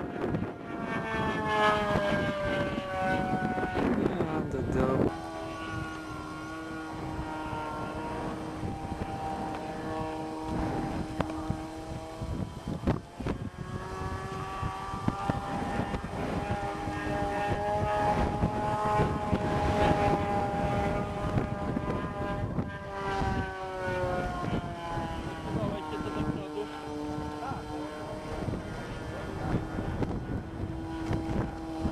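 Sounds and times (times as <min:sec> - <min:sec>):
model airplane engine buzzing: 0:00.0 - 0:31.9.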